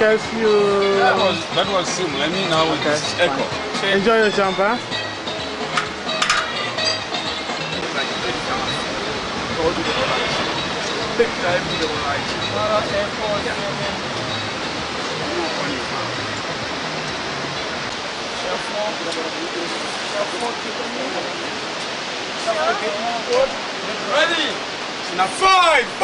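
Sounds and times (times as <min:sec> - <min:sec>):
indistinct voices talking: 0:00.0 - 0:26.0
rushing whitewater roar: 0:00.0 - 0:26.0.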